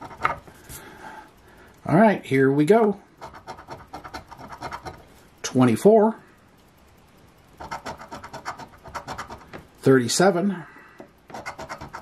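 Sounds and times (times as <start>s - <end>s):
coin scraping lottery ticket: 7.6s - 9.5s, 11.3s - 12.0s.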